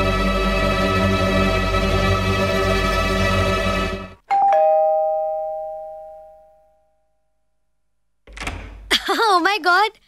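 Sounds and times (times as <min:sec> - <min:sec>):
two-tone doorbell chime: 0:04.3 - 0:07.4.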